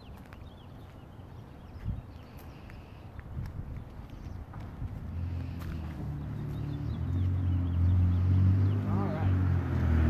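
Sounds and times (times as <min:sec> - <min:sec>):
vehicle engine hum: 0:03.8 - 0:10.0.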